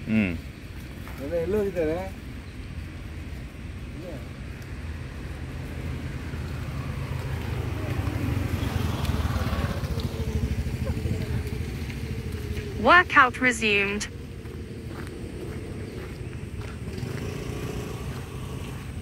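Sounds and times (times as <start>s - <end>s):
vehicle engine rumble: 0.0s - 19.0s.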